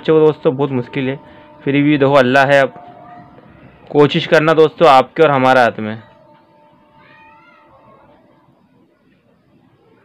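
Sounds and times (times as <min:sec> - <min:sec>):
faint steady tone: 0:00.0 - 0:10.0
faint animal call: 0:06.0 - 0:08.2.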